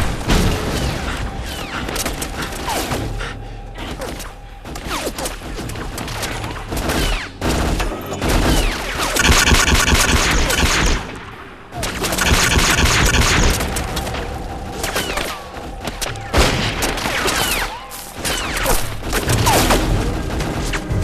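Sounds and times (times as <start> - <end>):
rapid gunfire: 0.0 - 21.0.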